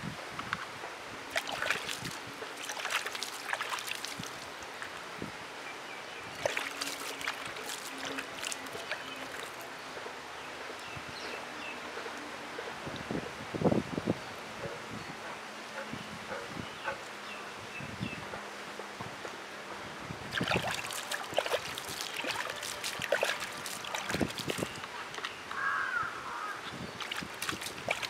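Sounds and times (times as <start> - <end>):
water dripping and splashing: 1.2 - 5.1, 6.2 - 10.9, 20.2 - 25.6, 26.7 - 28.0
loud splash or knock: 20.3 - 24.7
wet clicks: 20.3 - 25.4, 27.0 - 28.0.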